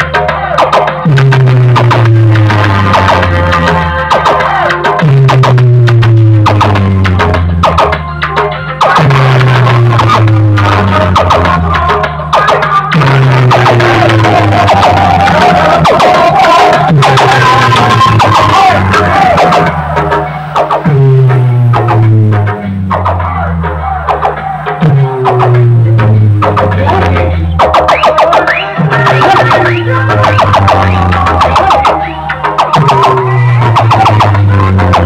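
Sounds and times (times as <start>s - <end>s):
dj music over loudspeakers: 0.0s - 35.0s
deep bass note sliding downward: 1.1s - 4.0s, 5.0s - 7.9s, 9.0s - 11.8s, 13.0s - 28.0s, 28.8s - 35.0s.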